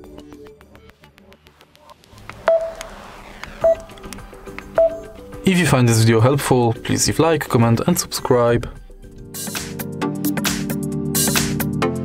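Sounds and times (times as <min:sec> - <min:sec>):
short beep: 0:02.4 - 0:04.0, 0:04.8 - 0:05.2.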